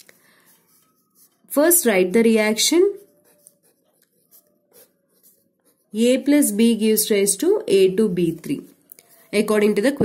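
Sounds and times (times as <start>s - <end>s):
pen scratching on paper: 0.5s - 6.5s.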